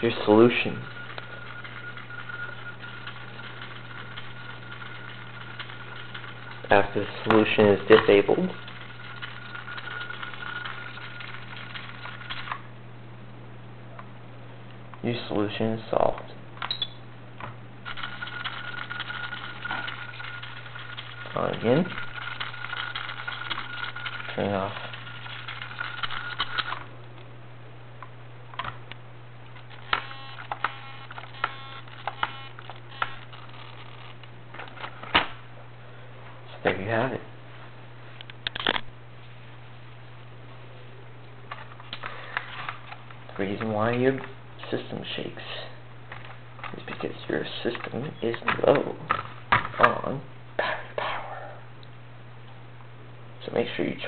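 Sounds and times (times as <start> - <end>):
high electrical whine with ticking: 0.0 - 50.7
steady low hum: 0.0 - 54.0
servo buzzing and whirring: 29.6 - 34.2.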